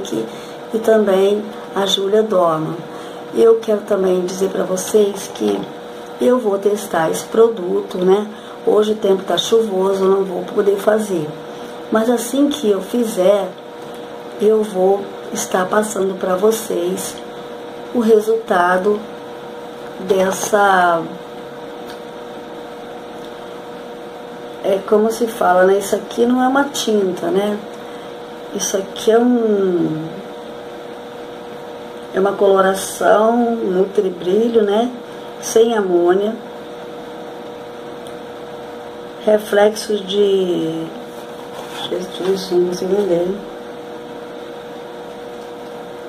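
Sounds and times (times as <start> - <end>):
faint hum tone: 0.0 - 46.0.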